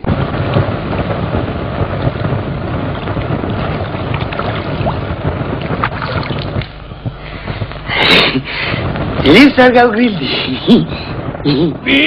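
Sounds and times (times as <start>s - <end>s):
stormy wind and water rushing: 0.0s - 12.0s.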